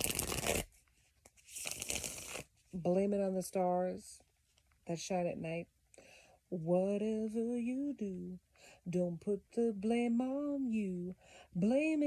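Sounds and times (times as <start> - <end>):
cards being shuffled: 0.0 - 2.5.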